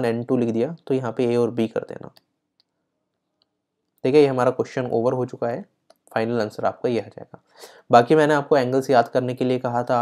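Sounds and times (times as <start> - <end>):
man speaking: 0.0 - 2.2, 4.0 - 10.0.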